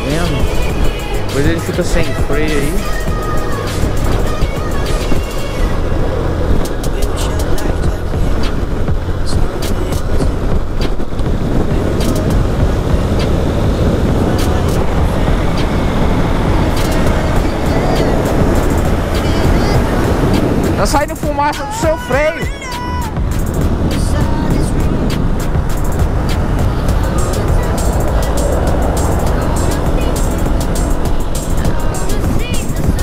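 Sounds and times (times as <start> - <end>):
motorcycle engine running: 0.0 - 33.0
truck passing: 0.0 - 33.0
wind rushing on microphone: 0.0 - 33.0.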